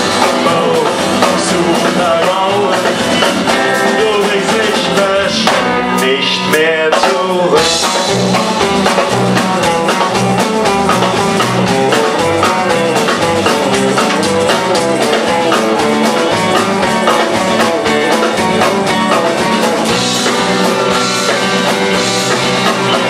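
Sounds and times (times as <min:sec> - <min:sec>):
live rock band playing: 0:00.0 - 0:23.0.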